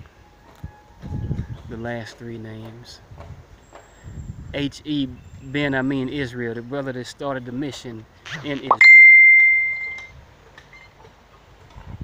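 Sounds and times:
bell-like ring: 8.8 - 10.1.

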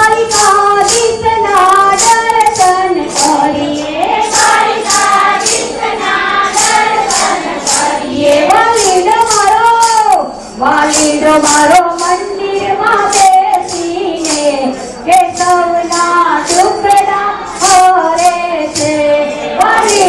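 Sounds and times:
voices singing devotional song: 0.0 - 20.0.

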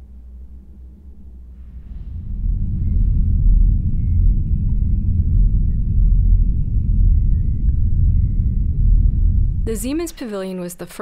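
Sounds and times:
loud low rumble: 0.0 - 10.2.

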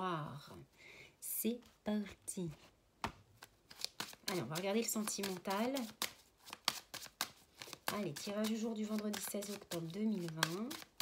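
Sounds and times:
cards being shuffled: 3.0 - 11.0.

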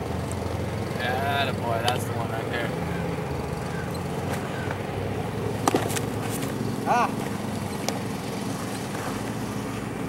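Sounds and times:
tractor engine hum: 0.0 - 10.0
baseball popping into mitt: 5.6 - 6.5.

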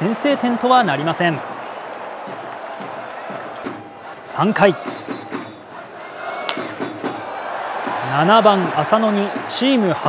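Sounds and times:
baseball bat hitting ball: 6.5 - 7.2.

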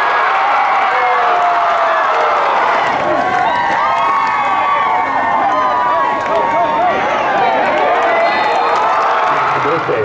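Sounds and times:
stadium crowd shouting and cheering: 0.0 - 10.0.

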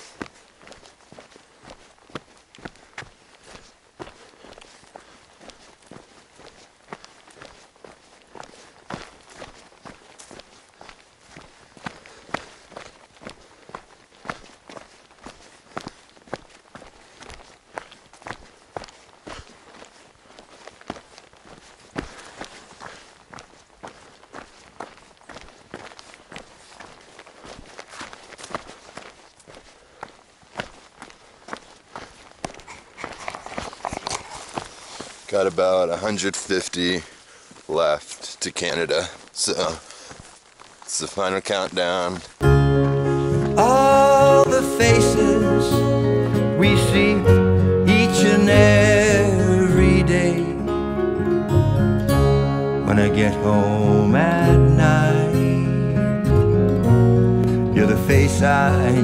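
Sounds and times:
footsteps on dirt trail: 0.0 - 51.4, 56.8 - 59.0.

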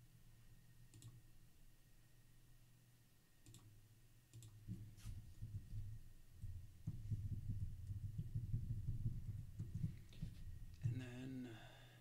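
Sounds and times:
low steady hum: 0.0 - 12.0
computer mouse clicks: 0.9 - 1.2, 3.4 - 3.7, 4.3 - 4.6.

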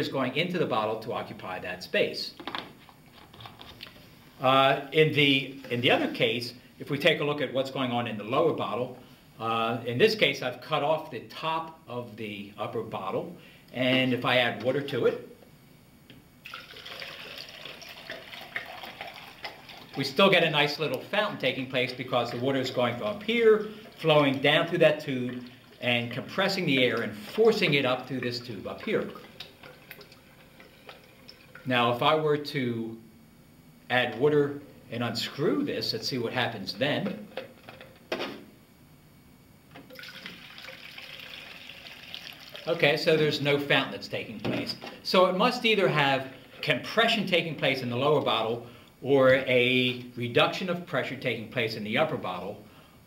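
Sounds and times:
water pouring into bottle: 16.4 - 20.7, 21.9 - 31.7, 39.9 - 42.8
water splashing: 22.0 - 31.7.

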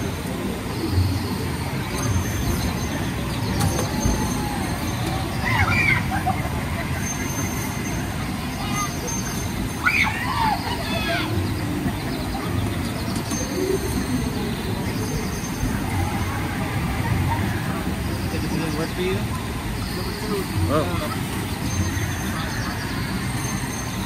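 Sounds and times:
distant voices: 0.0 - 24.0
water rushing: 0.0 - 24.0.

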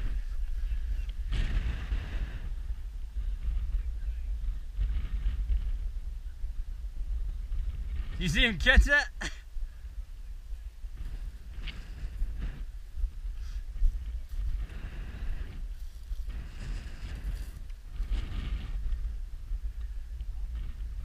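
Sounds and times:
wind rumble on microphone: 0.0 - 21.0.

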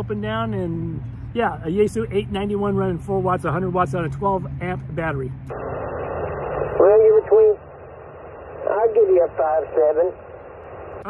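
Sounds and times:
radio receiver hiss: 5.5 - 11.0
narrow-band speech over radio: 6.7 - 7.6, 8.6 - 10.2.

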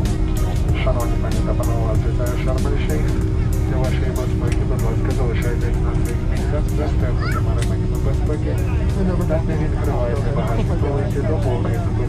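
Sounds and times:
jet engine rumble and hum: 0.0 - 12.0
passengers chattering: 0.0 - 12.0.

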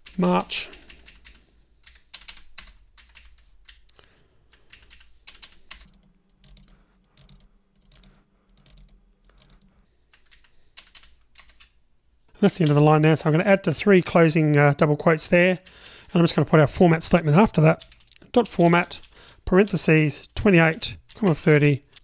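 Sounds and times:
computer keyboard clicking: 0.8 - 3.9, 4.6 - 11.7.

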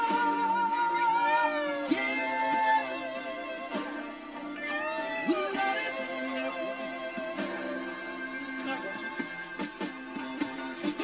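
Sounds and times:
drums: 0.0 - 11.0
guitar: 0.0 - 11.0.

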